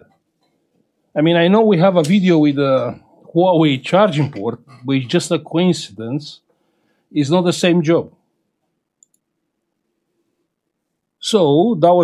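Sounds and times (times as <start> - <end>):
faint short clicks: 9.0 - 9.2.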